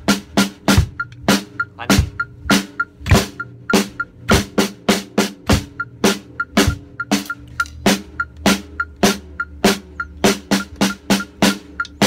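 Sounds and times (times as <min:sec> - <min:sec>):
bass drum thumps: 0:00.0 - 0:07.0
drum kit steady beat: 0:00.0 - 0:12.0.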